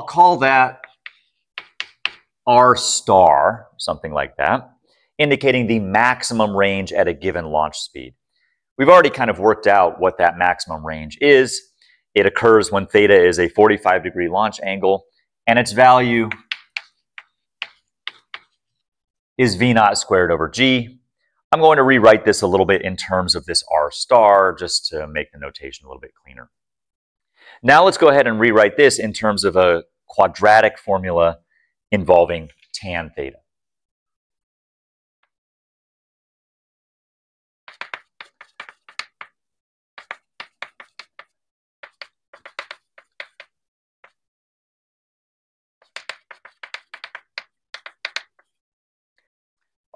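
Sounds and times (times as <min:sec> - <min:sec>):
chalk scratching on blackboard: 0:00.8 - 0:02.3, 0:16.3 - 0:18.6, 0:37.7 - 0:39.4, 0:40.0 - 0:44.2, 0:45.8 - 0:48.6.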